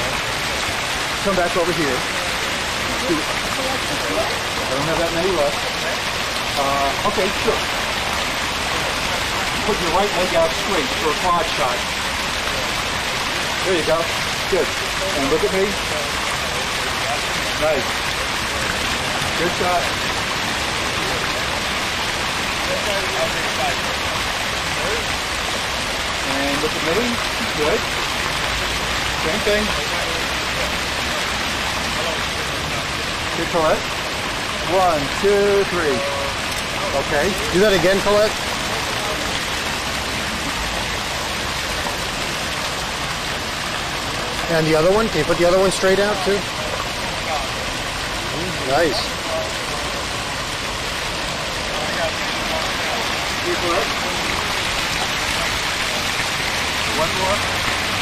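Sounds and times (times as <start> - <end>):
fountain water splashing into pool: 0.0 - 58.0.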